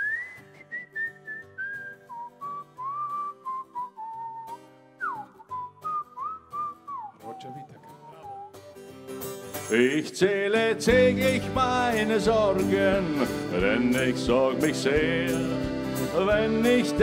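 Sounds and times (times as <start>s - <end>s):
man whistling a melody: 0.0s - 8.8s
live band playing: 10.9s - 17.0s.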